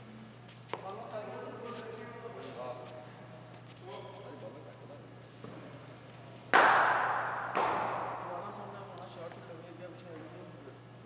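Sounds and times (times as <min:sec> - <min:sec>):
cricket bat hitting ball: 0:06.5 - 0:08.4.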